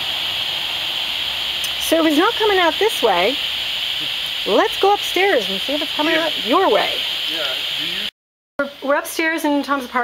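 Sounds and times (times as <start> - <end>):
steady hiss: 0.0 - 10.0
man's voice: 7.3 - 8.1.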